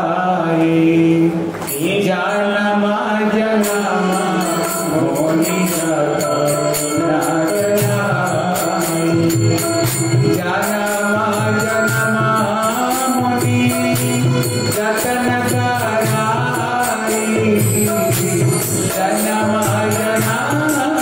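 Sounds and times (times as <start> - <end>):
person singing devotional chant: 0.0 - 21.0
jingling tambourine: 3.4 - 21.0.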